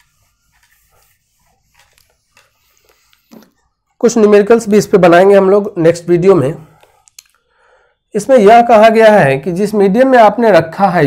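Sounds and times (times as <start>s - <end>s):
whiteboard being wiped: 0.0s - 3.8s.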